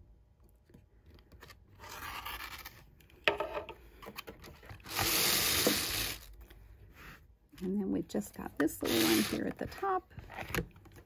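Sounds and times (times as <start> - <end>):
rotary cutter slicing fabric: 8.8 - 9.4.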